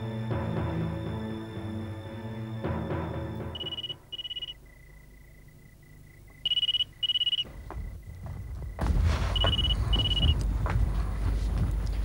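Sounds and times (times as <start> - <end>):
phone ringing electronic trill: 3.6 - 4.6, 6.5 - 7.4
low rumble with knocks: 7.4 - 12.0.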